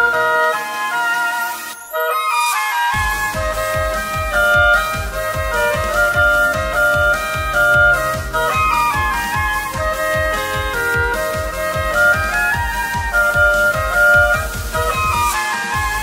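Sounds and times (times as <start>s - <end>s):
electronic backing track: 0.0s - 16.0s
oboe playing pop melody: 0.0s - 16.0s
kick drum beat: 3.0s - 16.0s.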